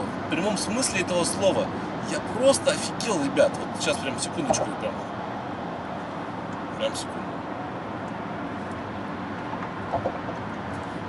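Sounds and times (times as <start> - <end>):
road and tyre noise in car: 0.0 - 11.0.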